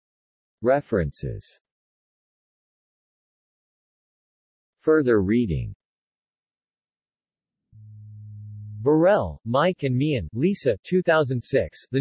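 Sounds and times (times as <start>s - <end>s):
synthesized text-to-speech voice: 0.6s - 1.6s, 4.9s - 5.8s, 8.8s - 12.0s
low electronic tone: 7.8s - 9.4s.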